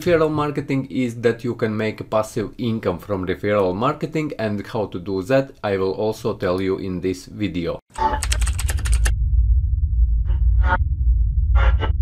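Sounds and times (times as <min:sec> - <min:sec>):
deep rumble: 0:08.6 - 0:12.0.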